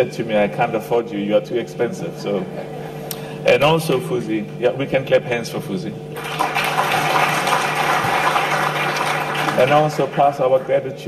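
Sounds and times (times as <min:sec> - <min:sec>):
audience applauding: 0:06.2 - 0:10.4.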